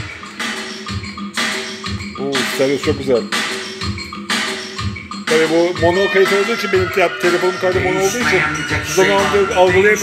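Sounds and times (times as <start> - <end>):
rock song from vinyl record: 0.1 - 10.0.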